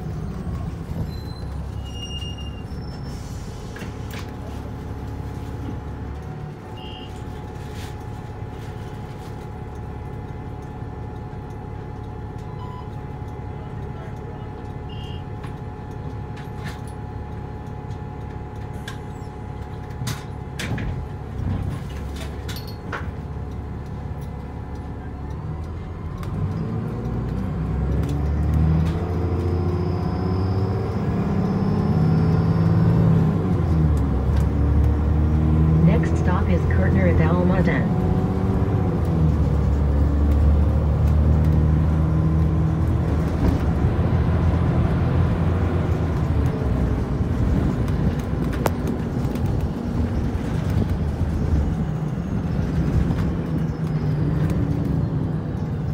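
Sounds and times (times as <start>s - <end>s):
bus engine idling: 0.0s - 55.9s
bus engine revving: 15.4s - 55.9s.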